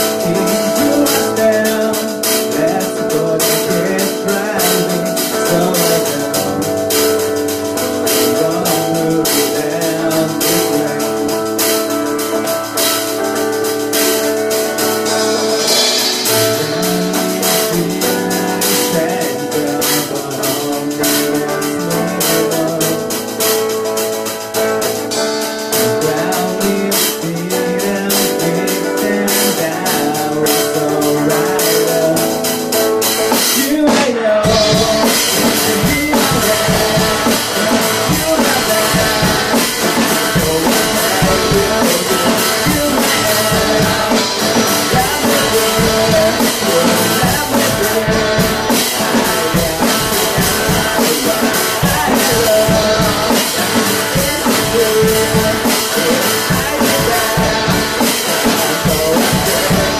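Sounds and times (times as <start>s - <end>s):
drum kit beat: 0.0s - 59.9s
electric guitar: 0.0s - 59.9s
man singing: 0.0s - 59.9s
strummed acoustic guitar: 0.0s - 59.9s.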